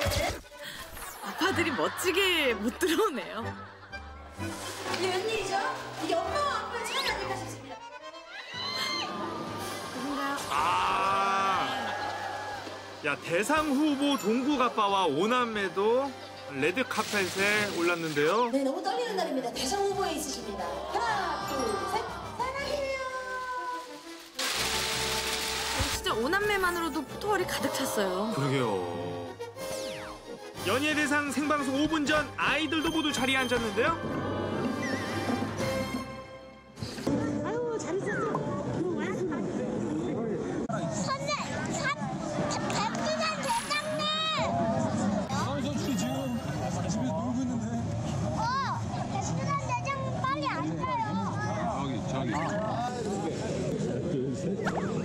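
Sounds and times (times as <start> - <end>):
background music: 0.0 - 39.0
children's excited exclamations: 10.4 - 12.7
background chatter: 36.8 - 55.0.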